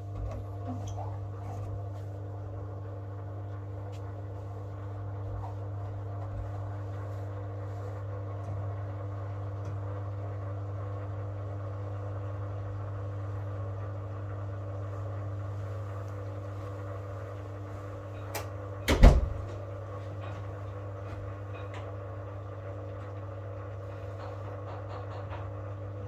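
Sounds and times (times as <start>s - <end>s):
washing machine humming: 0.0s - 26.0s.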